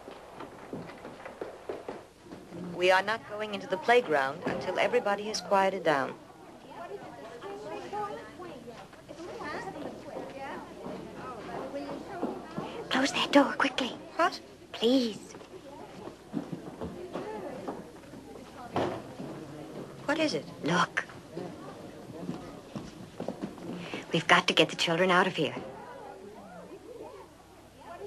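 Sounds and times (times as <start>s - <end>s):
shuffling feet: 0.0s - 2.8s, 22.1s - 24.2s
dialogue: 1.4s - 28.0s
children chattering: 3.3s - 20.2s, 25.5s - 28.0s.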